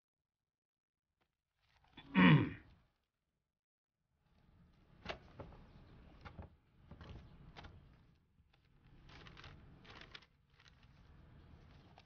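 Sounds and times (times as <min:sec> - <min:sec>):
man grunting: 0:02.1 - 0:02.6.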